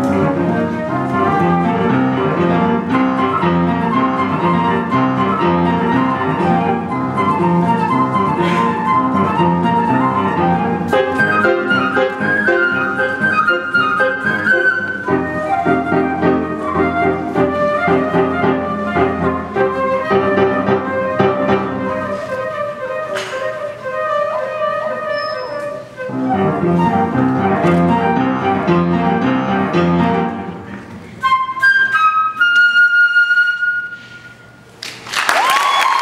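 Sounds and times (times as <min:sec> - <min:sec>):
flute melody: 0:00.0 - 0:34.7
piano accompaniment: 0:00.0 - 0:34.8.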